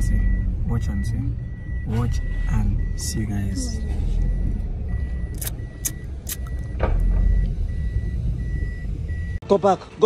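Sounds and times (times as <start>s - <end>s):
car engine rumble: 0.0s - 10.0s.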